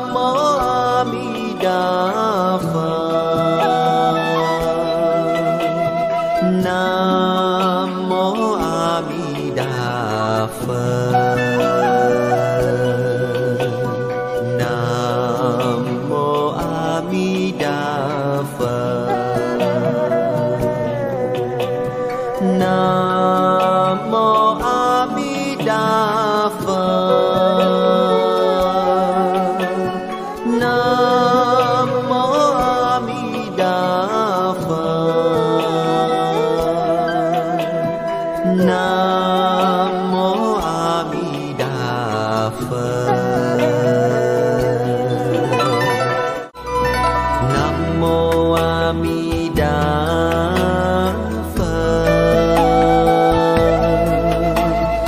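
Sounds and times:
devotional chant with long notes: 0:00.0 - 0:46.6, 0:47.2 - 0:55.0
instrumental backing music: 0:00.0 - 0:55.0.

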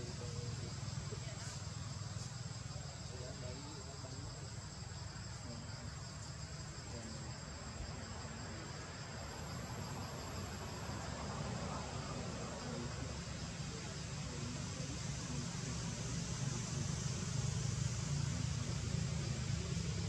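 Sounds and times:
insects trilling: 0:00.0 - 0:20.0.

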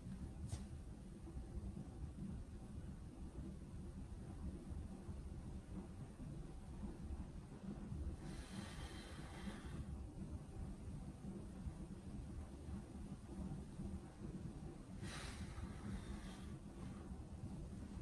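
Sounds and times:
faint low steady hum: 0:00.0 - 0:18.0.

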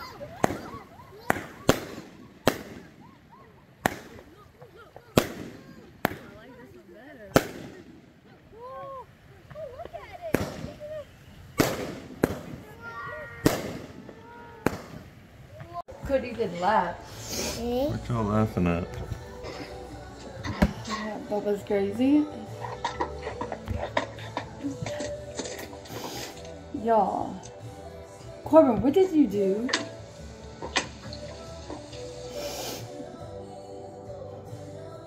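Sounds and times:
fireworks bangs: 0:00.0 - 0:08.4, 0:09.4 - 0:16.3.

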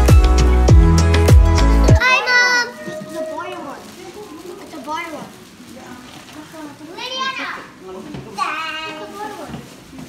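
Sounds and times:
young children calling: 0:02.0 - 0:05.2
background chatter: 0:02.0 - 0:10.0.

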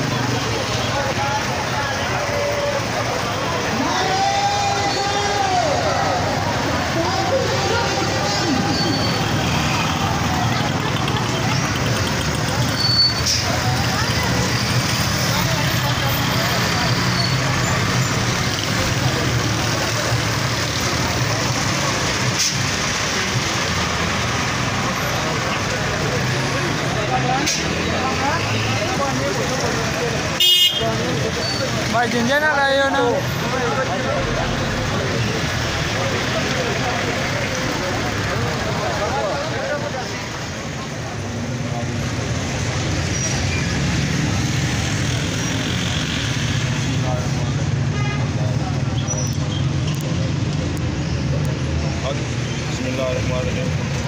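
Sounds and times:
crowd voices: 0:00.0 - 0:54.0
motorcycle engines running: 0:05.5 - 0:30.4, 0:31.0 - 0:54.0.

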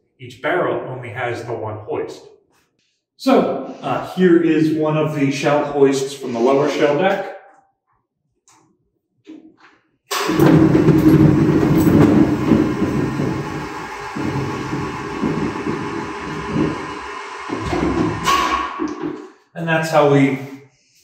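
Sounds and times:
shell hoist machinery rumbling: 0:10.1 - 0:19.2.

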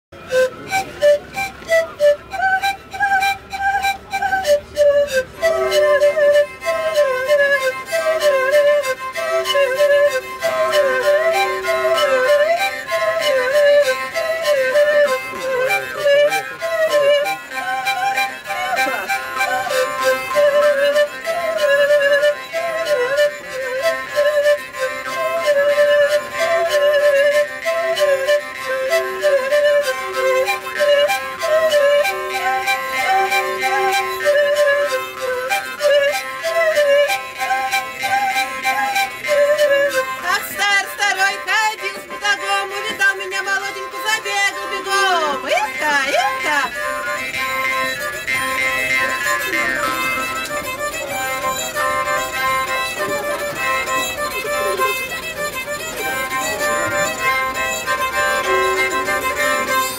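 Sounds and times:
bowed fiddle: 0:00.1 - 0:59.9
panpipes: 0:00.2 - 0:59.9
jaw harp: 0:02.7 - 0:40.6, 0:44.6 - 0:59.9.

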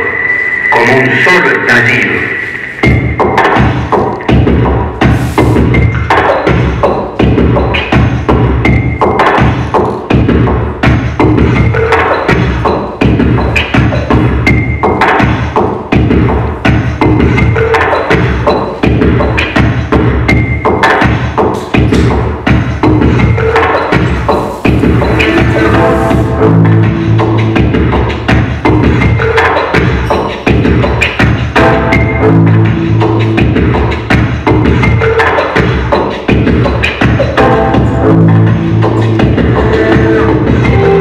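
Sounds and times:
music with dense percussive beat: 0:02.5 - 0:41.0.

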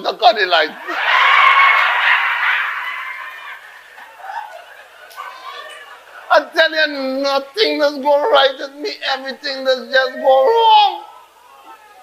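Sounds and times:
audience laughing: 0:00.8 - 0:06.5.

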